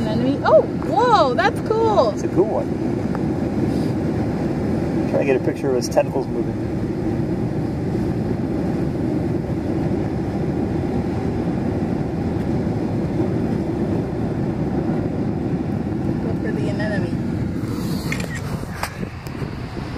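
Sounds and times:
ocean surf rumbling: 0:00.0 - 0:19.9
wind: 0:00.0 - 0:19.9.

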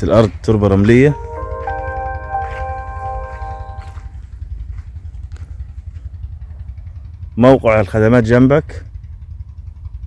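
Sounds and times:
held musical chord: 0:00.8 - 0:04.6.

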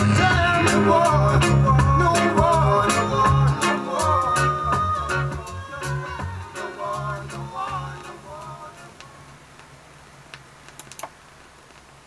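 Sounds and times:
vinyl clicks and pops: 0:08.8 - 0:12.0.

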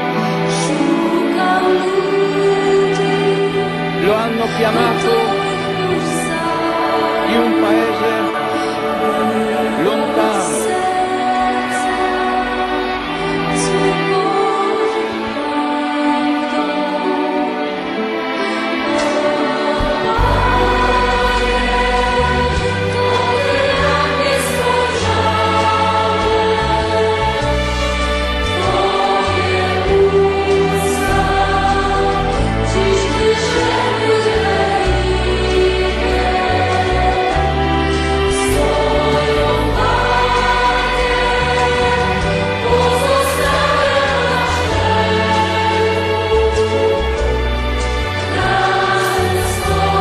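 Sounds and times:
choir singing: 0:00.0 - 0:50.0.

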